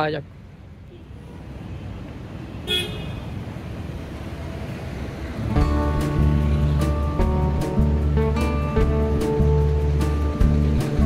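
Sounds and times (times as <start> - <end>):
road traffic rumble: 0.0 - 11.0
car horn toot: 2.6 - 3.3.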